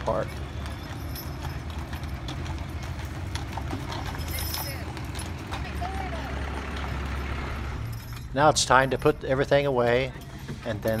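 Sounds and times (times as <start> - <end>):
hooves clip-clopping on pavement: 0.0 - 11.0
wagon low rumble: 0.0 - 11.0.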